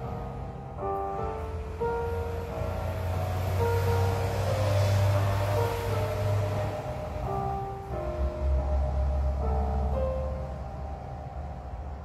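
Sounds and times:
digital piano slow held notes: 0:00.0 - 0:12.0
passing vehicle rushing: 0:00.0 - 0:12.0.

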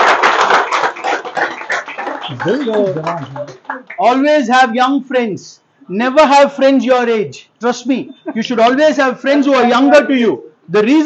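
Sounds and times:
audience applauding: 0:00.0 - 0:04.2.

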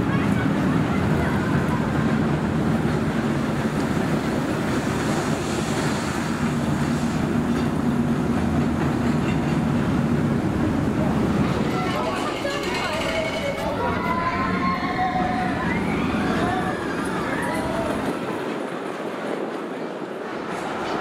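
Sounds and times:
roller coaster wheels rumbling on rail: 0:00.0 - 0:21.0.

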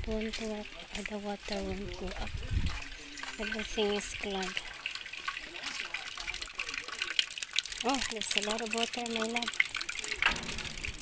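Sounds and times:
water gushing and splashing: 0:00.0 - 0:11.0.

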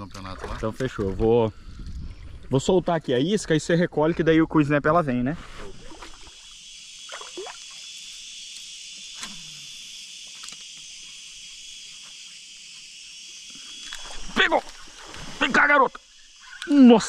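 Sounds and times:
insects droning: 0:00.0 - 0:17.0.

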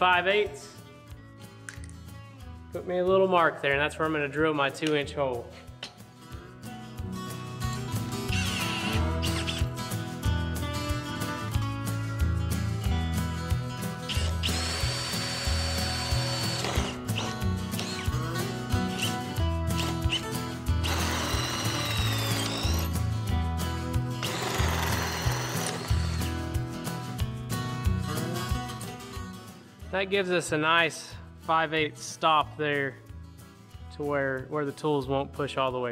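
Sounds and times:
background music with steady beat: 0:00.0 - 0:35.9
drill with hole saw cutting pipe: 0:08.3 - 0:09.7, 0:14.1 - 0:18.1, 0:19.8 - 0:23.0, 0:24.2 - 0:26.4.

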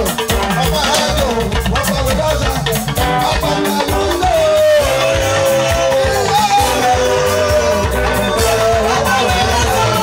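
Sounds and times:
drum beat: 0:00.0 - 0:10.0
electric guitar: 0:00.0 - 0:10.0
man singing into a microphone: 0:00.0 - 0:10.0.

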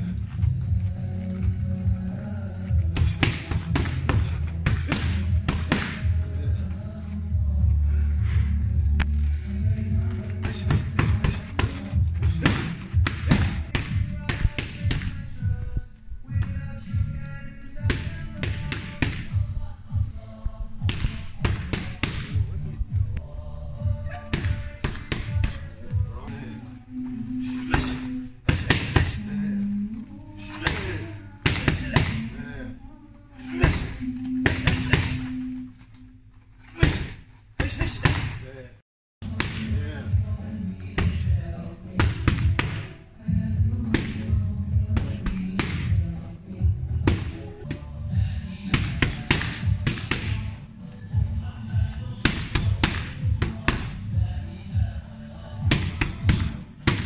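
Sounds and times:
background music with beat: 0:00.0 - 0:32.5, 0:39.2 - 0:57.0
boxing gloves striking mitts: 0:02.8 - 0:06.3, 0:10.4 - 0:15.2, 0:17.8 - 0:19.6, 0:20.8 - 0:22.6, 0:24.1 - 0:26.2, 0:27.6 - 0:29.2, 0:30.5 - 0:32.3, 0:33.5 - 0:35.5, 0:36.7 - 0:38.4, 0:39.2 - 0:39.8, 0:40.9 - 0:43.0, 0:43.8 - 0:46.1, 0:47.0 - 0:47.8, 0:48.7 - 0:50.6, 0:52.1 - 0:54.2, 0:55.6 - 0:57.0.

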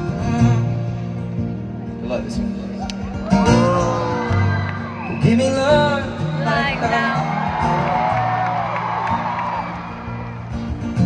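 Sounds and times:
amplified acoustic guitar: 0:00.0 - 0:11.0
crowd whoops: 0:03.1 - 0:05.6, 0:07.0 - 0:10.8.

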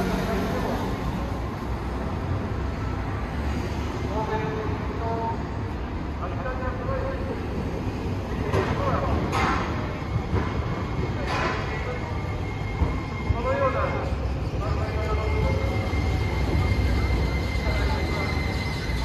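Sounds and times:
faint whine of tram: 0:00.0 - 0:19.0
tram rumbling: 0:00.0 - 0:19.0.

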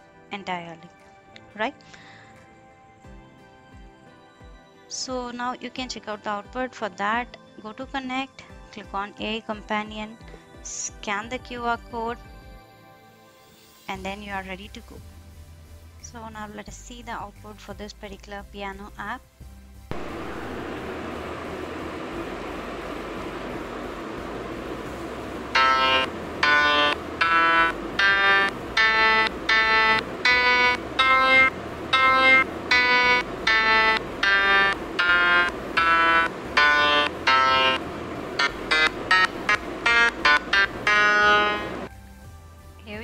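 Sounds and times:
steady hiss: 0:19.8 - 0:41.9
piano app notes: 0:19.9 - 0:41.9.

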